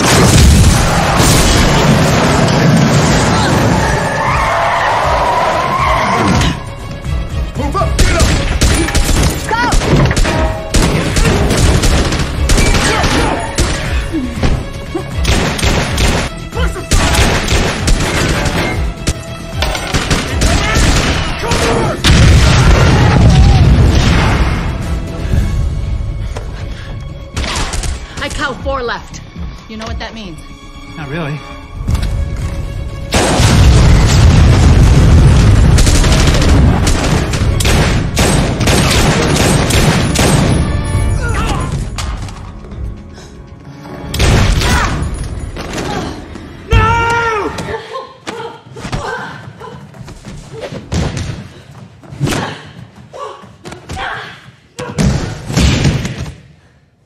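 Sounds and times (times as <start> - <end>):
deep explosion boom: 33.1 - 37.1.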